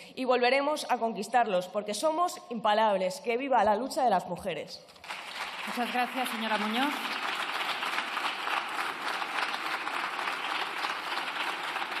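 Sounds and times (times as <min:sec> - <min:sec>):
crowd applauding: 0:05.0 - 0:12.0.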